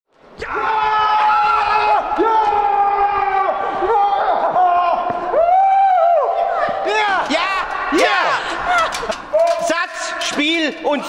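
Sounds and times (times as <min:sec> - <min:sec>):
rising and falling whoops: 0:00.8 - 0:06.4.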